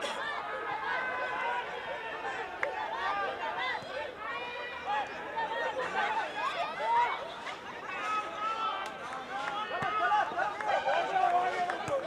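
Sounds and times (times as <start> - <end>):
voices talking and calling out: 0.0 - 12.0.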